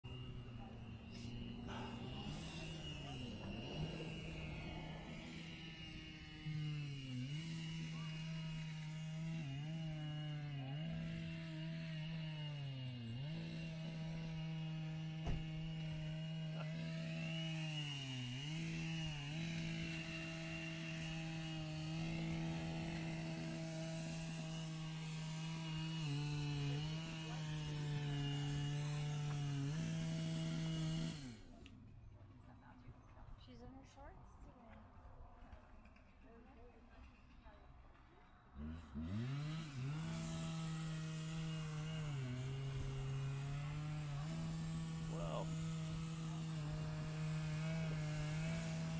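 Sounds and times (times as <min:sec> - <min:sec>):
chainsaw cutting wood: 0:00.0 - 0:31.9, 0:38.5 - 0:48.9.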